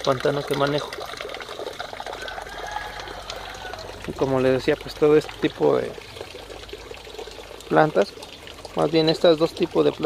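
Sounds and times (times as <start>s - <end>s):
water trickling into a pond: 0.0s - 10.0s.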